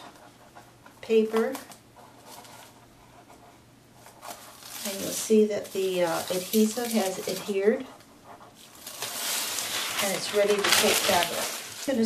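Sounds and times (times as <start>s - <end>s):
faint dry ripping and crackling: 4.0s - 7.9s, 8.5s - 12.0s
paper backing peeling off: 4.1s - 7.7s, 8.6s - 12.0s.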